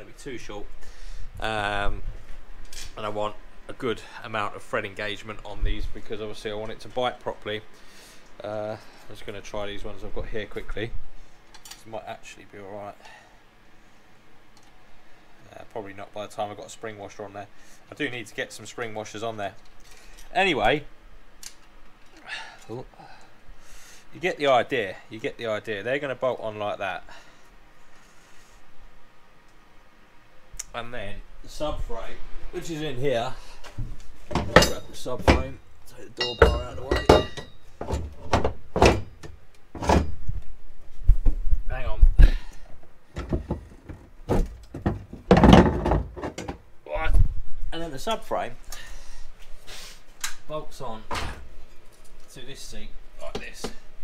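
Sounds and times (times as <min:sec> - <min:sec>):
clunks of steel parts: 0:34.3 - 0:35.6, 0:36.2 - 0:40.3
metal bolts rattling: 0:34.3 - 0:35.6, 0:36.2 - 0:40.2.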